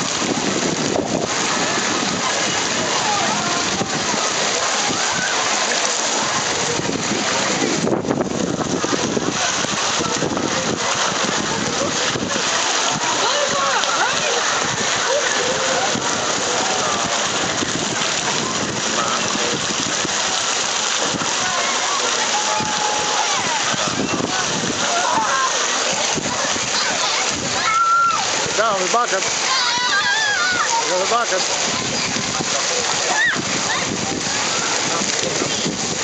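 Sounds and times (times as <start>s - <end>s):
voices calling and talking: 0.0s - 36.0s
water splashing and rushing: 0.0s - 36.0s.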